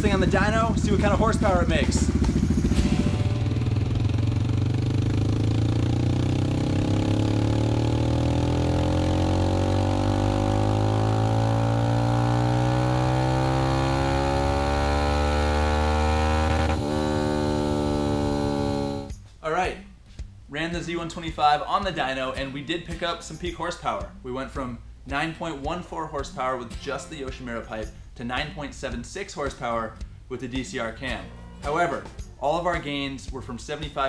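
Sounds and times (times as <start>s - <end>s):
motorcycle engine revving: 0.0s - 19.2s.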